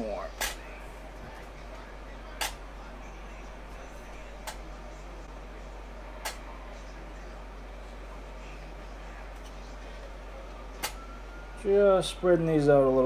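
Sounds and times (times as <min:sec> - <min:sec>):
low hum: 0:00.2 - 0:13.0.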